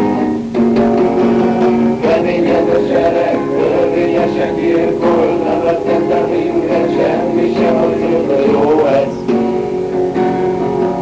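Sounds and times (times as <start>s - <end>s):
acoustic guitar strumming: 0.0s - 11.0s
men singing along: 1.0s - 9.6s.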